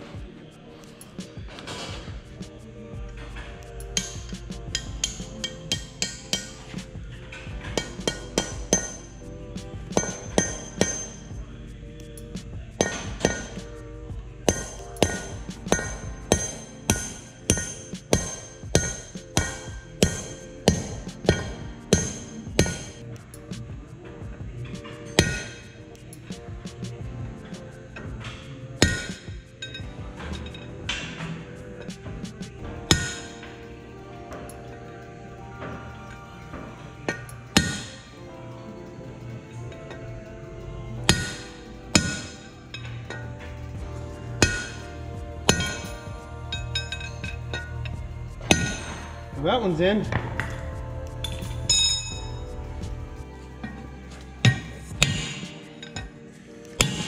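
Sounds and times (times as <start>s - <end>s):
hammer clanging on metal: 3.9s - 9.2s, 9.8s - 11.4s, 12.8s - 13.7s, 14.5s - 23.0s, 24.9s - 26.0s, 28.0s - 33.6s, 35.6s - 38.1s, 41.0s - 44.9s, 45.5s - 50.6s, 51.2s - 52.4s, 53.6s - 56.2s.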